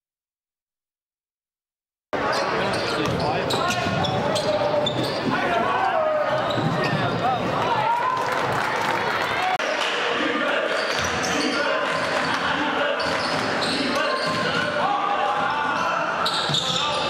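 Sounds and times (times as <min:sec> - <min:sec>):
sneakers squeaking: 0:02.2 - 0:07.5, 0:10.8 - 0:12.0, 0:12.9 - 0:14.8, 0:15.6 - 0:17.0.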